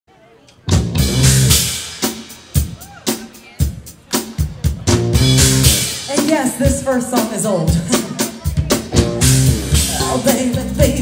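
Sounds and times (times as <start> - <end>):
live pop-rock band playing: 0.6 - 11.0.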